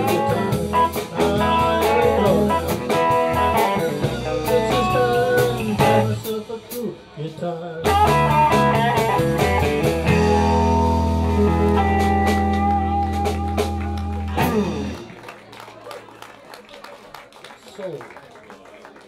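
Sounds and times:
electric guitar lead lines: 0:00.0 - 0:15.1
blues band playing: 0:00.0 - 0:15.8.

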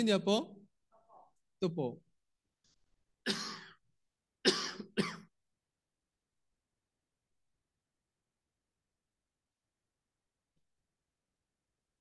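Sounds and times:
man coughing: 0:03.2 - 0:03.8, 0:04.4 - 0:05.3.

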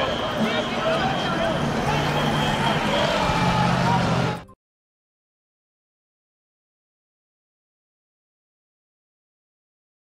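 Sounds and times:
crowd voices: 0:00.0 - 0:04.6
car driving past: 0:01.2 - 0:04.5.

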